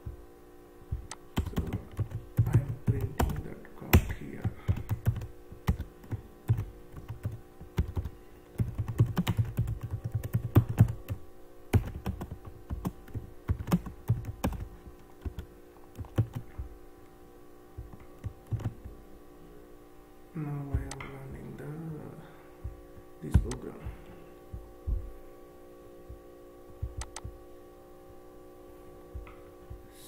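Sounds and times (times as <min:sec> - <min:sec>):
typing on computer keyboard: 0:01.4 - 0:04.1, 0:04.7 - 0:15.4, 0:16.0 - 0:16.4, 0:17.9 - 0:18.7.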